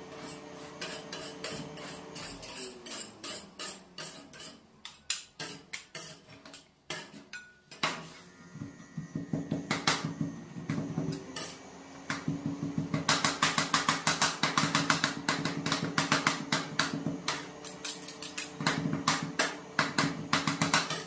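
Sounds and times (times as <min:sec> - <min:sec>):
metal spatulas chopping on steel plate: 0:00.1 - 0:08.0, 0:12.9 - 0:21.0.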